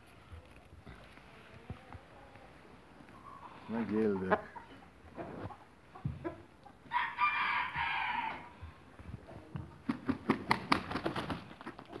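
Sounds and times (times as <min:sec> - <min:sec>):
rooster crowing: 0:06.9 - 0:08.5.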